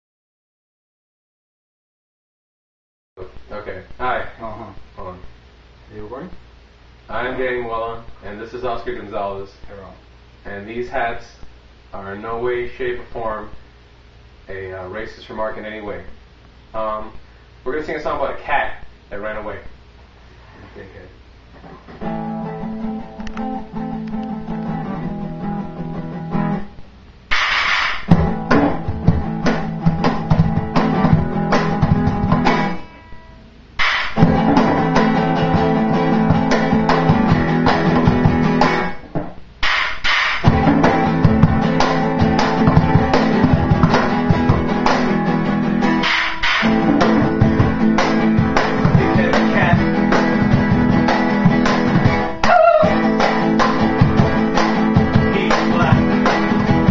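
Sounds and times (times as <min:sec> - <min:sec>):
acoustic guitar chords: 0:21.6 - 0:27.4, 0:28.1 - 0:39.2, 0:40.4 - 0:56.9
cajon box drum slaps: 0:27.3 - 0:32.8, 0:33.8 - 0:56.9.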